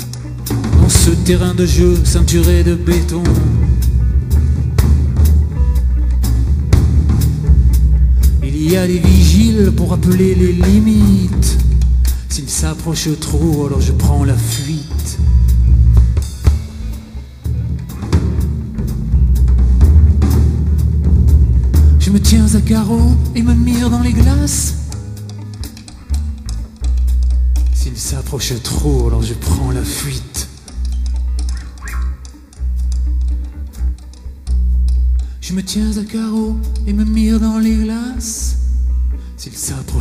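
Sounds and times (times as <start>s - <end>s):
bass guitar: 0.0s - 40.0s
drums and cymbals: 0.0s - 40.0s
live rock band playing: 0.0s - 40.0s
electric bass low note: 13.7s - 25.1s.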